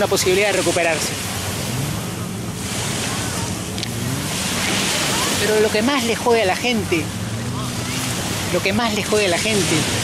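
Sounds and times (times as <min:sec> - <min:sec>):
ocean surf on beach: 0:00.0 - 0:10.0.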